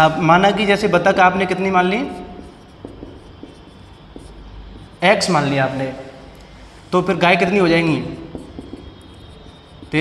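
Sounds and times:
low room hum: 0.0 - 10.0
marker pen on whiteboard: 0.0 - 10.0.

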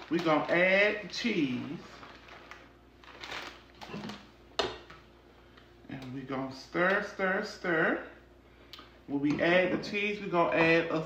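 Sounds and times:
plastic bag crinkling: 0.0 - 4.4.

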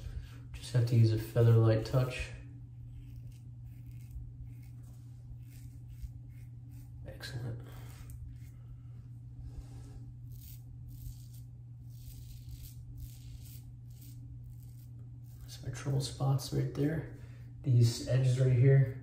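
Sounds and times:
razor scraping stubble: 0.0 - 8.8, 10.2 - 19.0.

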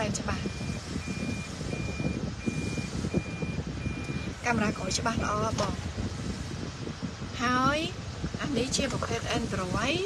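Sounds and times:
reverse warning beeper: 0.4 - 4.8.

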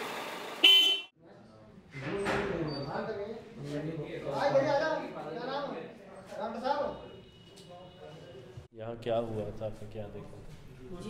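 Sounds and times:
vehicle horn toot: 0.6 - 1.1.

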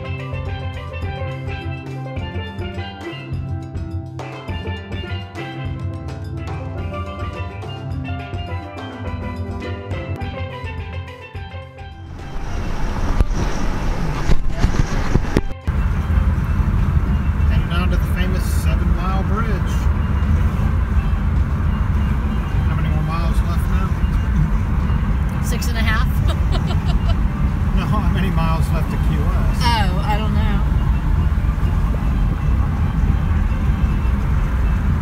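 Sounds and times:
road and tyre rumble: 0.0 - 35.0
wind noise: 12.0 - 35.0.

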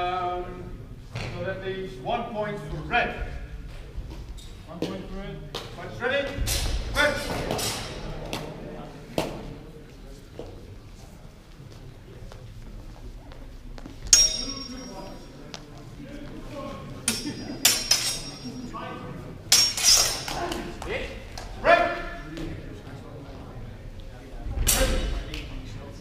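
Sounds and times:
swords clashing: 14.2 - 15.0, 17.1 - 18.6, 19.5 - 20.7.

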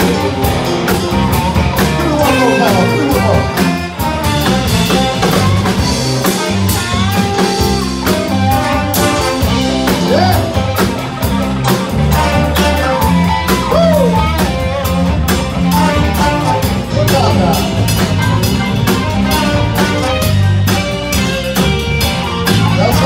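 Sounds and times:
drum kit: 0.0 - 23.0
electric bass: 0.0 - 23.0
electric guitar: 0.0 - 23.0
saxophone: 0.0 - 23.0
trombone: 0.0 - 23.0.

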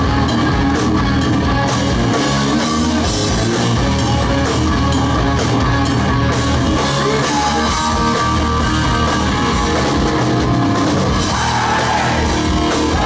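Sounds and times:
bass guitar: 0.0 - 13.0
distorted electric guitars: 0.0 - 13.0
drum kit: 0.0 - 13.0.

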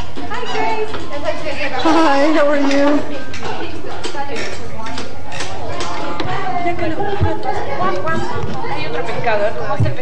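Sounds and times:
adult and child voices chattering: 0.0 - 10.0.

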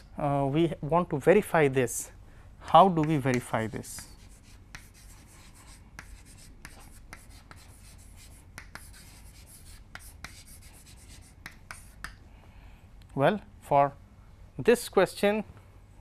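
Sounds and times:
chalk tapping and scratching: 2.7 - 12.2.

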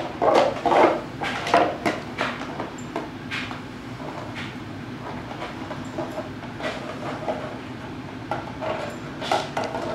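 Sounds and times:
dog chewing plastic bottle: 0.1 - 1.9.

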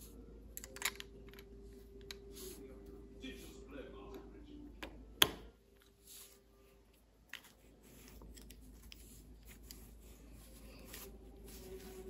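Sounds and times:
faint handling sounds: 0.0 - 4.3, 5.7 - 12.0.

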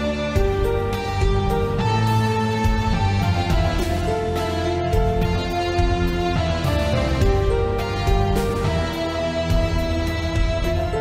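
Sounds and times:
gentle guitar music with beat: 0.0 - 11.0.

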